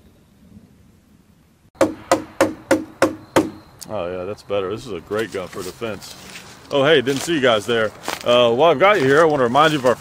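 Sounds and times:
sharp knocks: 1.8 - 3.6.

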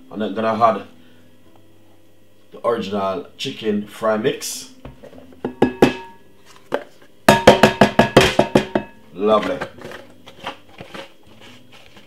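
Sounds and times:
plastic tub knocking on glass bowl: 7.3 - 9.7.

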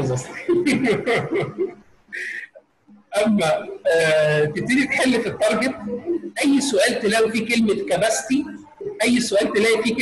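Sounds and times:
man talking: 0.0 - 1.3, 3.1 - 10.0.

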